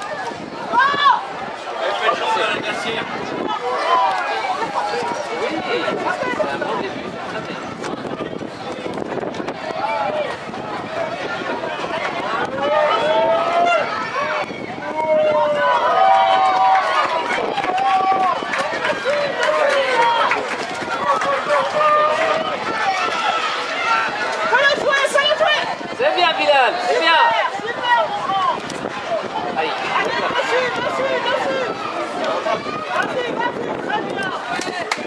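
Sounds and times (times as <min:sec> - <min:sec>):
excited voices shouting: 0:00.0 - 0:06.8, 0:09.6 - 0:35.0.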